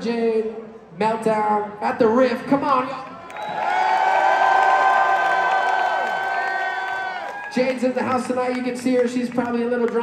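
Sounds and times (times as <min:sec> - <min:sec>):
crowd cheering and screaming: 0:03.3 - 0:08.0.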